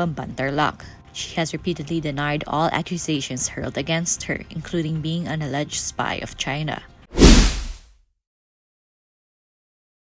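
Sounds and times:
whoosh sound effect: 7.2s - 7.8s.

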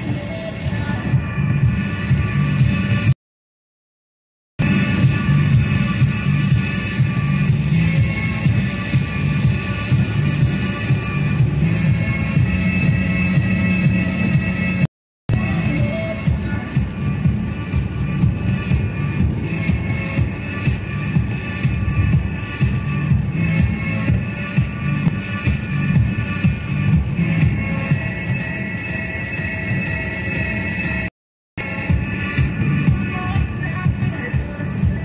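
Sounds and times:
electronic music on car radio: 0.0s - 3.2s, 4.6s - 35.0s.

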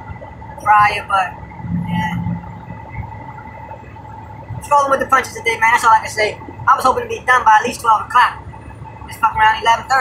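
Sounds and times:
faint steady whine: 0.0s - 10.0s
truck engine and road rumble: 0.0s - 10.0s.

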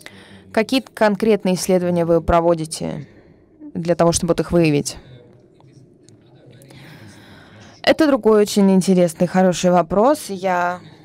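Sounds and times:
low hum of a large hall: 0.0s - 11.0s
faint murmured voices: 4.7s - 8.6s.

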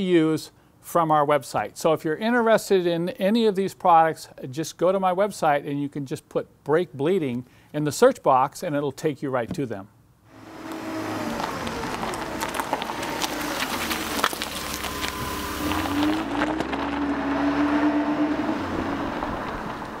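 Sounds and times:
vehicle engine running: 10.3s - 20.0s.

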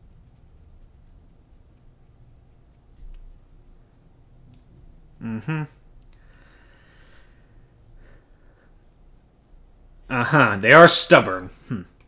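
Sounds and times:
fingers scratching a beard: 0.0s - 3.3s, 7.7s - 11.4s.

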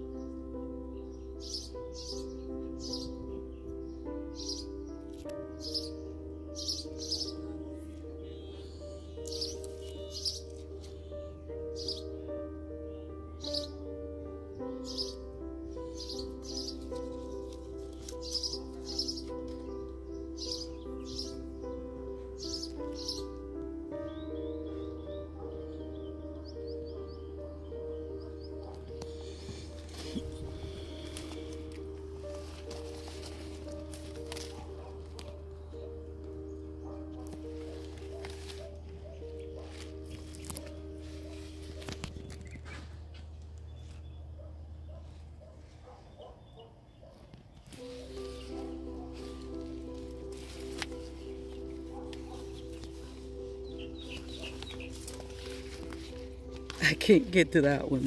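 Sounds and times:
instrumental music with sustained chords: 0.0s - 58.0s.

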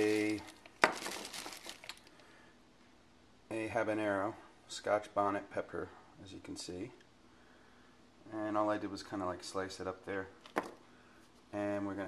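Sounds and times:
plastic bag crinkling: 0.0s - 2.3s.

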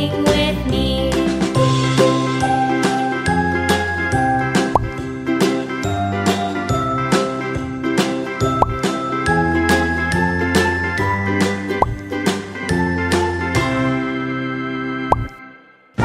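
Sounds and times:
bouncy children's music: 0.0s - 15.3s.

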